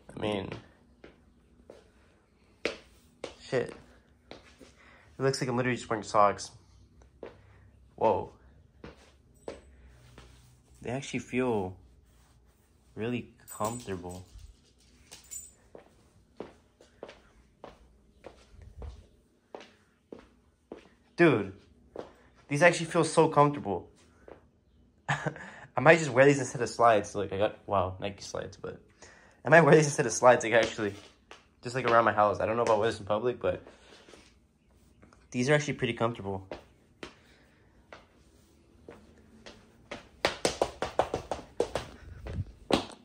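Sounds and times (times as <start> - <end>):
soft footsteps on laminate floor: 0.0 - 4.9, 6.8 - 12.9, 15.7 - 22.5, 35.9 - 43.0
footsteps on laminate floor: 2.6 - 4.8, 36.5 - 43.0.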